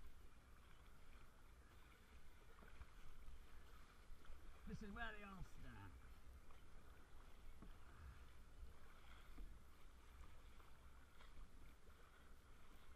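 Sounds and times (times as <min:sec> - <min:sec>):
water sloshing around kayak: 0:00.0 - 0:12.9.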